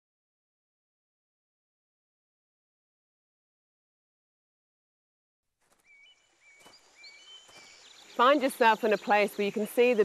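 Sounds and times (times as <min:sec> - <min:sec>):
footsteps on dirt path: 0:05.6 - 0:08.9
small bird chirping: 0:05.7 - 0:10.0.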